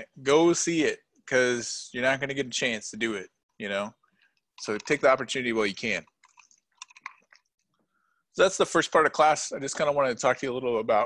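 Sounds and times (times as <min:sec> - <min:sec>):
small clicks and smacks: 0:06.1 - 0:07.8.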